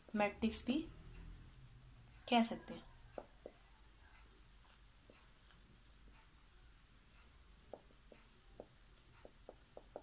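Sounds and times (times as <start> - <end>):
marker squeaking on whiteboard: 7.7 - 10.0.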